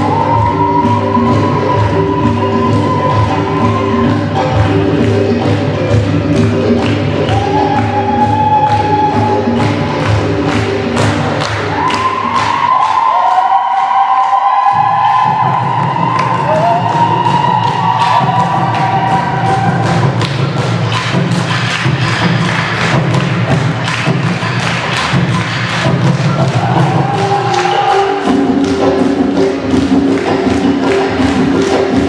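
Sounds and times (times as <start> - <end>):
deep bass: 0.0 - 12.8
dance music with singing: 0.0 - 32.0
steady drum beat: 14.6 - 32.0.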